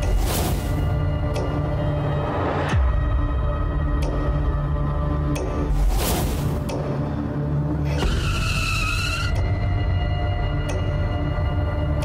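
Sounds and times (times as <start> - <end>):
background music: 0.0 - 12.0
truck tyres squealing: 7.8 - 9.5.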